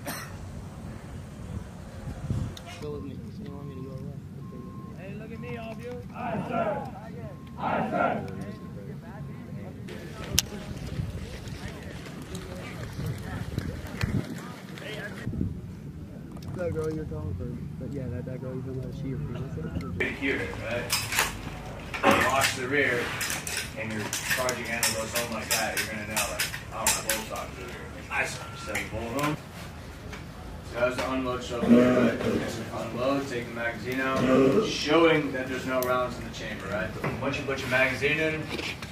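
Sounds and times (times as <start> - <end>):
men talking indistinctly: 2.6 - 10.3, 16.4 - 29.4, 30.7 - 38.7
rifle parts clicking and rattling: 20.8 - 27.6
man talking: 30.7 - 38.5.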